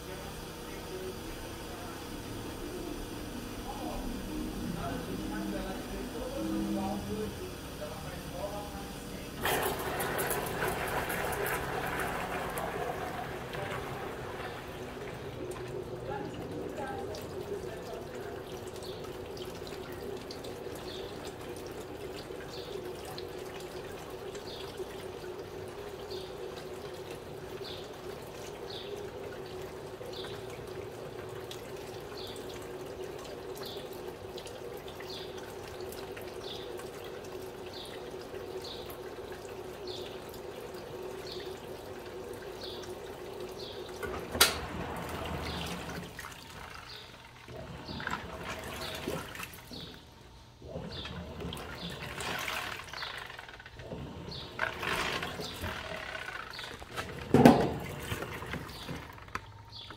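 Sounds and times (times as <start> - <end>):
water stream running into tub: 0.0 - 59.9.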